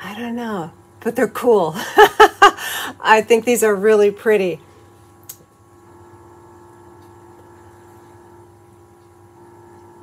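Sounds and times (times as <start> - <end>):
electrical room hum: 0.0 - 10.0.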